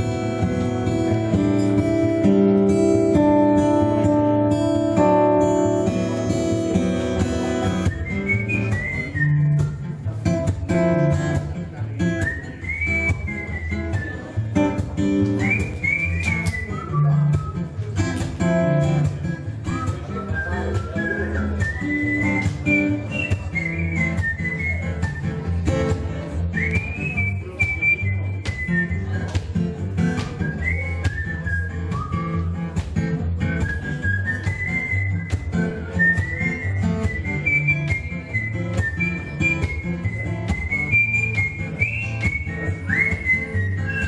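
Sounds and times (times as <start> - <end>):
strummed acoustic guitar: 0.0 - 44.0
whistled melody: 7.6 - 9.8, 12.1 - 14.4, 15.3 - 17.7, 19.2 - 25.6, 26.5 - 29.4, 30.3 - 32.6, 33.6 - 44.0.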